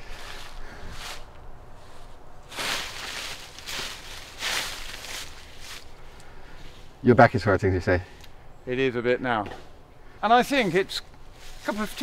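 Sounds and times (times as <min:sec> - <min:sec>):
footsteps on dry leaves: 0:00.0 - 0:07.0, 0:10.5 - 0:12.0.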